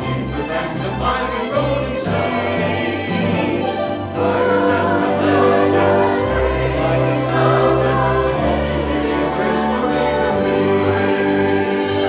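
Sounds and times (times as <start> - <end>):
church choir singing: 0.0 - 12.0
instrumental accompaniment: 0.0 - 12.0.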